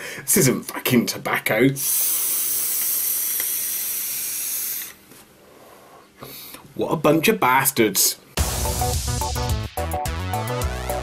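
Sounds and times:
electronic cigarette airy hiss: 1.7s - 5.1s.

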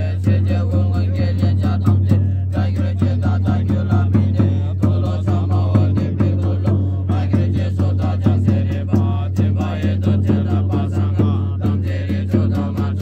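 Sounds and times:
frame drum beating: 0.0s - 13.0s
monks chanting in unison: 0.0s - 13.0s.

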